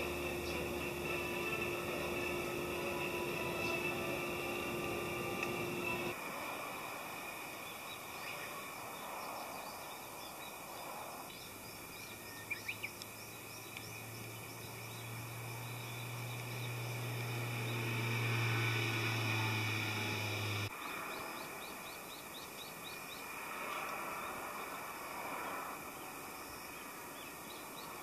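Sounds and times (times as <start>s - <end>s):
birds chirping: 0.0s - 6.2s, 11.3s - 24.4s
insect wings buzzing: 15.0s - 20.7s.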